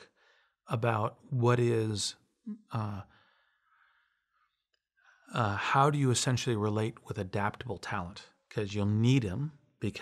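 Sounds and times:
faint breath: 0.0 - 0.6, 3.0 - 5.3.

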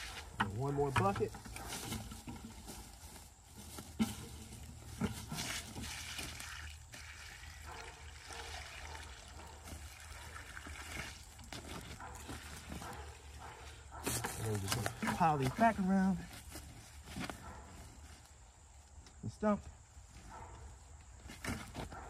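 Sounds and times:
water pouring onto wood chips: 5.4 - 11.8.

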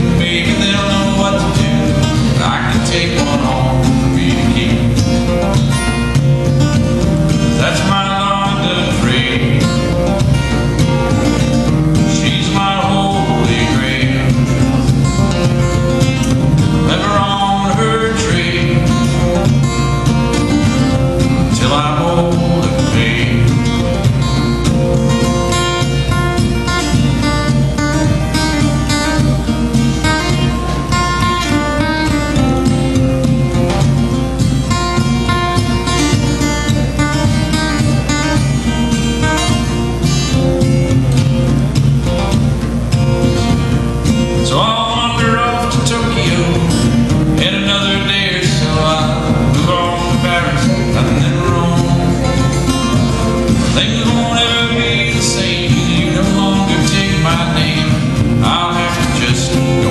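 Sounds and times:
man singing: 0.0 - 6.3, 7.3 - 27.1, 44.2 - 59.9
acoustic guitar picking: 0.0 - 59.9.

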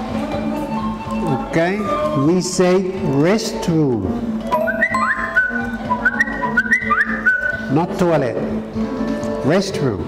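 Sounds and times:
person whistling a tune: 4.6 - 7.7.

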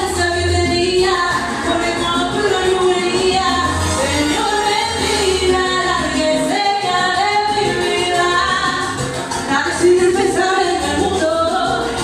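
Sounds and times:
backing track music: 0.0 - 12.0
woman singing karaoke: 0.0 - 12.0.

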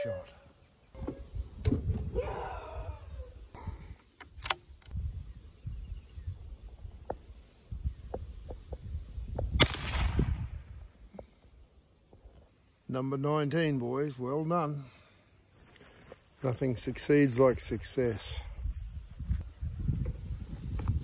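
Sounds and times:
sharp click: 4.2 - 5.0
rifle shot: 9.6 - 10.7.

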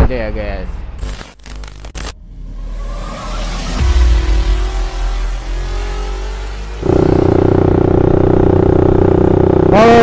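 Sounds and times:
motorcycle engine running: 3.8 - 10.0.

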